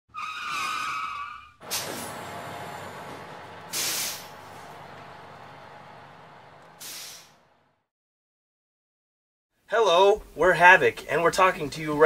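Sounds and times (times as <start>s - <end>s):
air brake hiss: 1.6s - 2.3s, 3.6s - 4.9s, 6.8s - 7.4s
sudden rush of noise: 1.6s - 7.5s.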